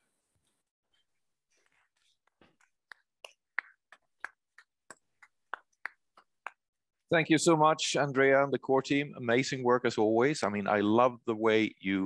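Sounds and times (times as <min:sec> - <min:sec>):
faint hand clapping: 0:01.6 - 0:06.8.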